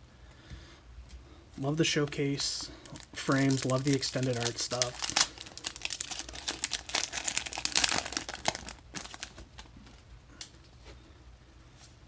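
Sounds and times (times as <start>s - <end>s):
foil wrapper crinkling and tearing: 2.8s - 10.0s.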